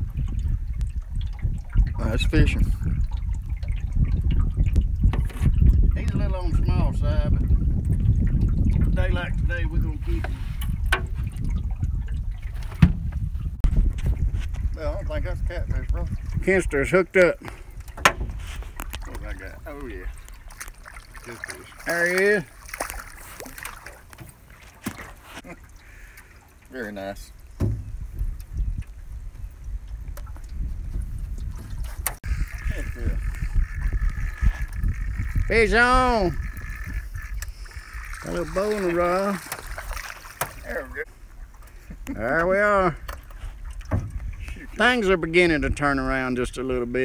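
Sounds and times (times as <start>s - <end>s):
wind buffeting microphone: 0.0s - 24.9s, 27.0s - 47.0s
water lapping against boat hull: 0.0s - 47.0s
fish splashing: 17.5s - 26.7s, 31.8s - 35.5s, 36.3s - 41.9s
small knocks: 27.6s - 28.0s, 43.0s - 44.3s.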